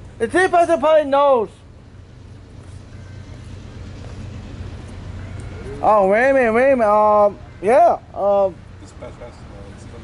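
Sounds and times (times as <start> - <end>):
diesel locomotive engines rumbling: 0.0 - 10.0.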